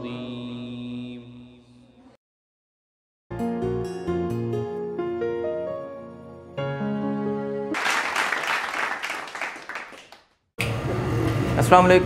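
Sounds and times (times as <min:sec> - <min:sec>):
background music with held notes: 0:03.3 - 0:07.8
small group clapping: 0:07.7 - 0:10.7.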